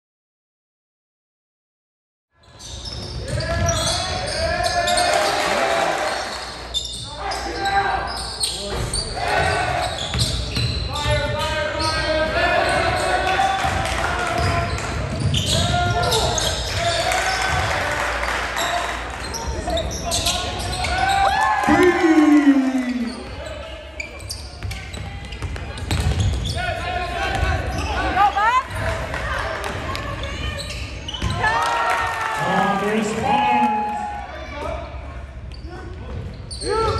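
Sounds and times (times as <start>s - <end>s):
shouts and chatter: 20.2s - 23.6s
person shouting: 21.6s - 23.2s
spectators' voices: 21.6s - 23.5s.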